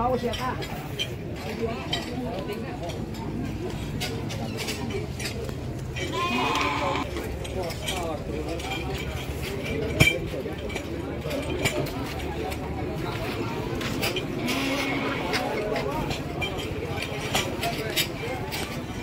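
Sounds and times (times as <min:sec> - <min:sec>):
crowd chatter: 0:00.0 - 0:19.0
sheep bleating: 0:06.1 - 0:07.1.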